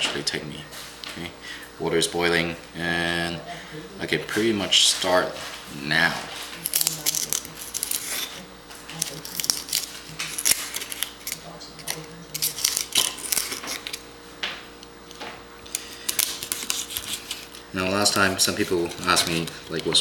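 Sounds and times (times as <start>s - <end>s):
knife scraping clam shell: 6.6s - 14.0s, 15.7s - 20.0s.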